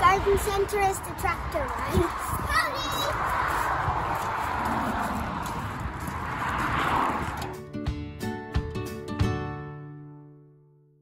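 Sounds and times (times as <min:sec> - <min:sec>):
steady rushing noise: 0:00.0 - 0:07.6.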